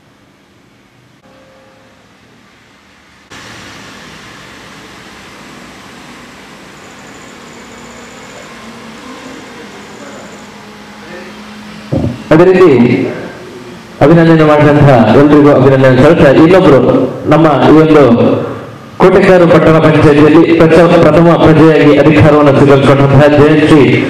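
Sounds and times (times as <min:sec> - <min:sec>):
steady background noise: 0:00.0 - 0:24.0.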